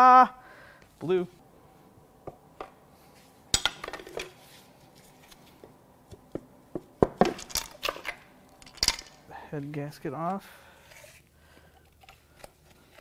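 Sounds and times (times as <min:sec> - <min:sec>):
metal tools clinking and knocking: 0:07.3 - 0:09.2.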